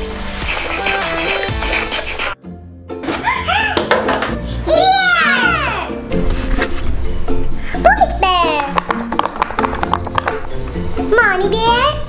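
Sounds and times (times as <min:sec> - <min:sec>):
background music: 0:00.0 - 0:12.0
child's drawn-out exclamation: 0:04.7 - 0:06.0.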